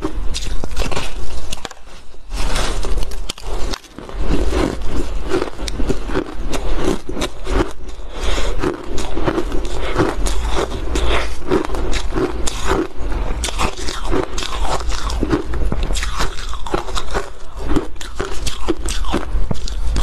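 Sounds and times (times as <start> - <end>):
chewing ice crunches: 0.0 - 20.0.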